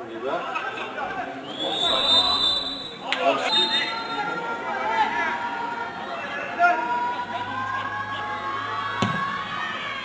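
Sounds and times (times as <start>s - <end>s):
crowd shouting long calls: 1.7s - 10.0s.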